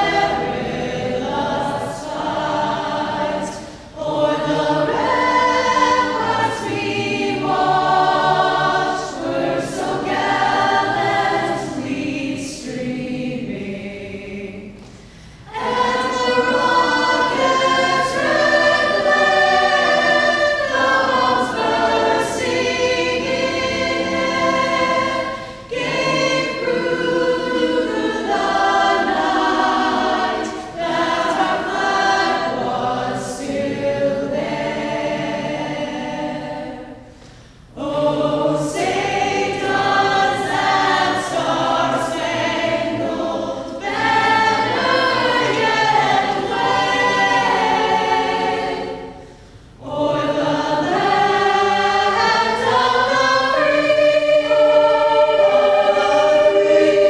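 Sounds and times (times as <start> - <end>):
choir singing in parts: 0.0 - 57.0.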